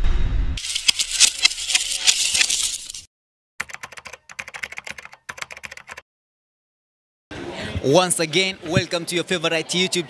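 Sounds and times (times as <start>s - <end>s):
computer keyboard typing: 3.6s - 6.0s.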